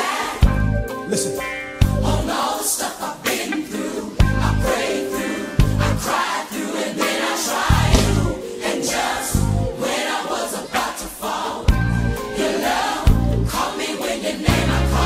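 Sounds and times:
drums: 0:00.0 - 0:02.6, 0:03.2 - 0:08.6, 0:11.6 - 0:15.0
choir singing gospel: 0:00.0 - 0:15.0
bass line: 0:00.4 - 0:00.9, 0:01.8 - 0:02.3, 0:04.2 - 0:04.8, 0:05.6 - 0:06.0, 0:07.7 - 0:08.4, 0:09.4 - 0:09.7, 0:11.7 - 0:12.2, 0:13.1 - 0:13.6, 0:14.5 - 0:15.0.

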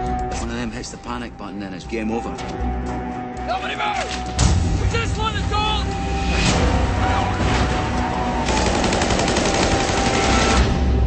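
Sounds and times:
rapid automatic gunfire: 0:08.5 - 0:10.7.

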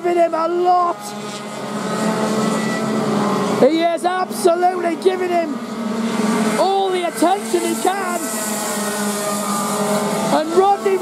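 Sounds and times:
racing kart engines droning: 0:00.0 - 0:11.0.

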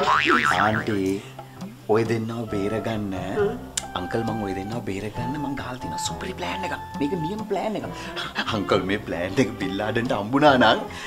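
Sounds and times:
warbling comic sound effect: 0:00.0 - 0:01.0
voices talking: 0:00.1 - 0:11.0.

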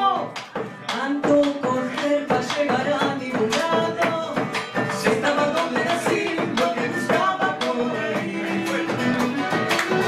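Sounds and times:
woman singing: 0:00.0 - 0:09.6
drum beats: 0:00.0 - 0:10.0
strummed guitars: 0:00.0 - 0:10.0.

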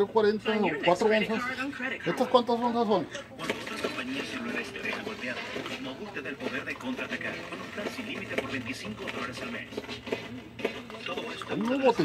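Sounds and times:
indistinct background voices: 0:00.7 - 0:12.0.

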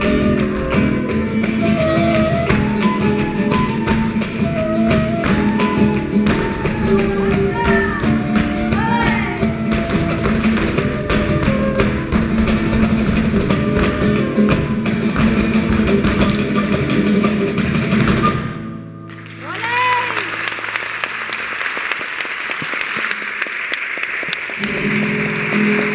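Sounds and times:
hand percussion: 0:00.0 - 0:18.6
flamenco dancers' footwork: 0:00.0 - 0:21.6, 0:22.4 - 0:25.9
flamenco guitars: 0:00.0 - 0:25.9
audience applause: 0:19.1 - 0:25.9
audience shouts: 0:19.4 - 0:20.3.

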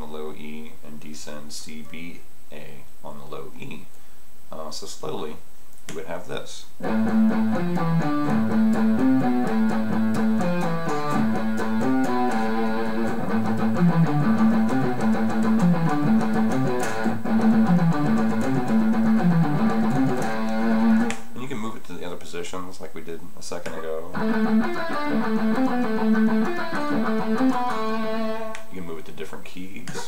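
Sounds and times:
electric guitar picking: 0:06.8 - 0:21.2, 0:24.1 - 0:28.7.

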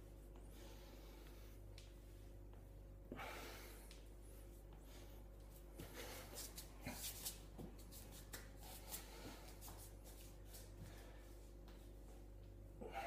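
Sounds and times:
low steady hum: 0:00.0 - 0:13.0
hands and feet tapping on tiles: 0:05.8 - 0:10.9.

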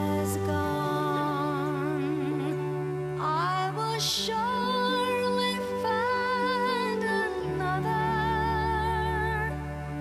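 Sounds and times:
sustained backing chord: 0:00.0 - 0:10.0.

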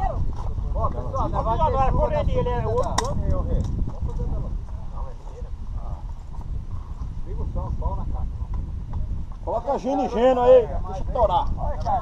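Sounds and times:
group of people talking: 0:00.0 - 0:12.0
steady low rumble: 0:00.0 - 0:12.0.

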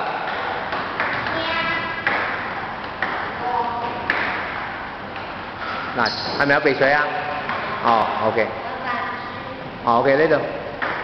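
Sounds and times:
table tennis ball pings: 0:00.2 - 0:05.4.

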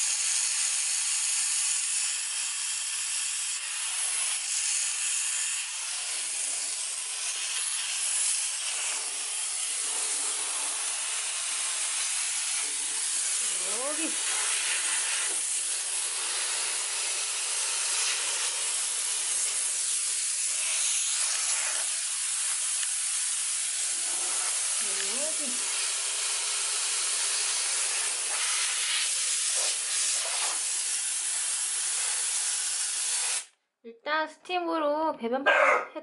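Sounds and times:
steam cleaner hissing: 0:00.0 - 0:33.5.

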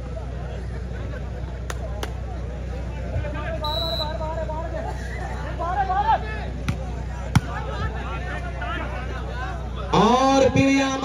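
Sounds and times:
crowd chattering and calling out: 0:00.0 - 0:11.0
volleyball slaps: 0:06.6 - 0:07.6.

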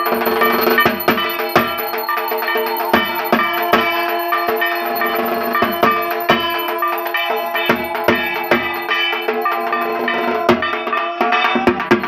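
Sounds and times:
metallic ringing: 0:00.0 - 0:10.8.

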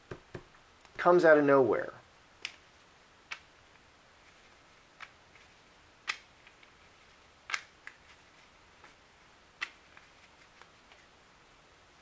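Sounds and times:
playing cards clicking on table: 0:06.0 - 0:06.7, 0:07.5 - 0:08.0.

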